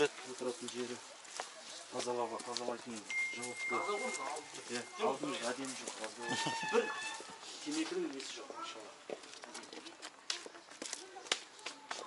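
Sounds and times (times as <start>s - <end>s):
footsteps on concrete: 0.1s - 12.0s.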